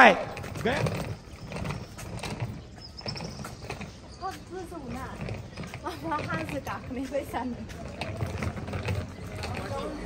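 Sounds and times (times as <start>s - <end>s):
footsteps on paving: 0.0s - 10.0s
suitcase wheels clacking on paving: 0.0s - 10.0s.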